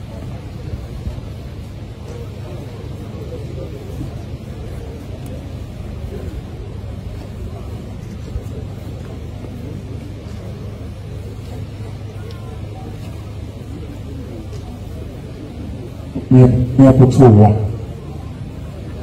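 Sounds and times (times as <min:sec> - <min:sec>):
crowd murmur: 0:00.0 - 0:19.0.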